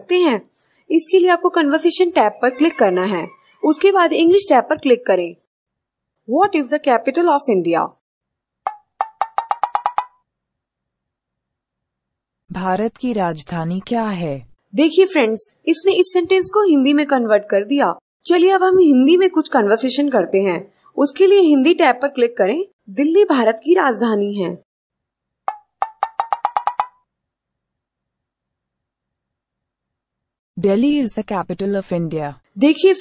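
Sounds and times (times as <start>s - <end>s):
wooden ticks like a wood block: 8.6s - 10.2s, 25.5s - 27.0s
digital typing ticks: 25.5s - 27.0s.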